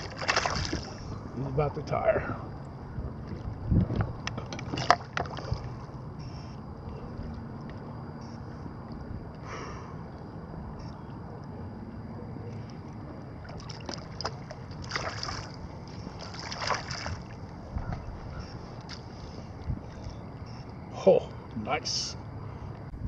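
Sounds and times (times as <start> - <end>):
water splashing: 0.0 - 1.1, 4.6 - 5.8, 13.3 - 17.6
water lapping and sloshing: 0.0 - 1.4, 2.3 - 6.1, 12.2 - 20.6.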